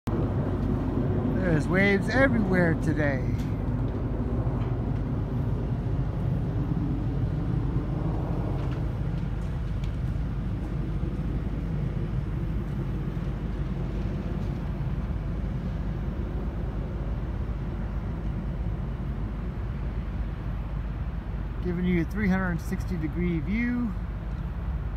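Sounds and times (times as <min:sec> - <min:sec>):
low outdoor rumble: 0:00.1 - 0:24.9.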